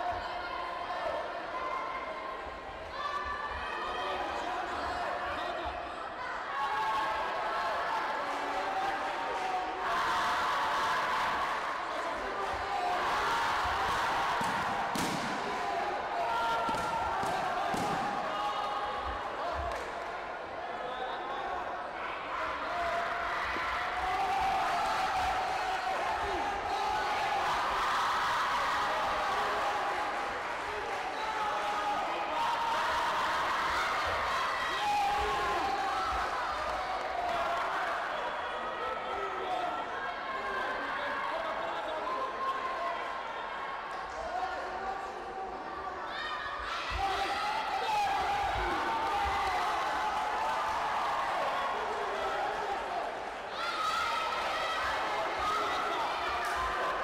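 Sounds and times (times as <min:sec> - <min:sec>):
voices echoing in a hall: 0:00.0 - 0:57.0.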